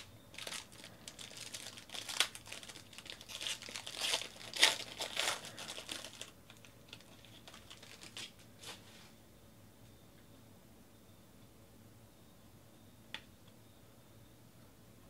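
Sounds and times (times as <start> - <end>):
foil wrapper tearing and crinkling: 0.0 - 8.4.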